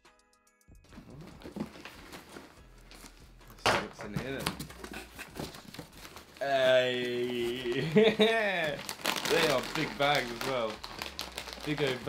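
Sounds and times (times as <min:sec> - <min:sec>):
man talking: 0:03.6 - 0:04.6, 0:06.4 - 0:10.8, 0:11.6 - 0:12.0
plastic packaging crinkling: 0:04.6 - 0:12.0.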